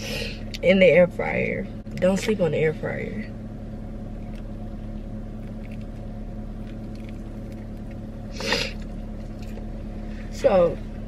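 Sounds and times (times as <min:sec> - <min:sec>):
car idling hum: 0:00.0 - 0:11.0
chewing crisp bacon: 0:05.3 - 0:09.7.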